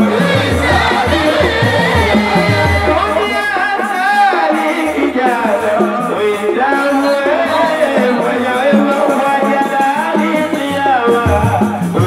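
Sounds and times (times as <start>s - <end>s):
group singing over music: 0.0s - 12.0s.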